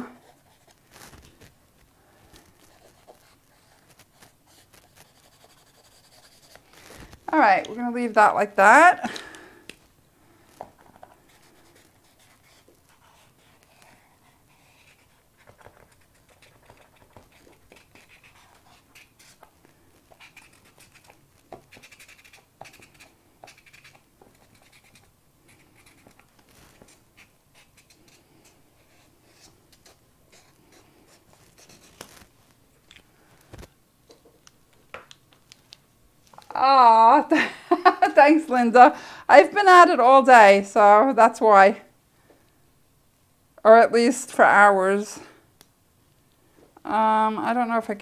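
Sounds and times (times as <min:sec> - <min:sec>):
marker nib scratching on paper: 0:00.0 - 0:00.8, 0:02.6 - 0:06.7, 0:10.9 - 0:19.5, 0:20.1 - 0:32.1.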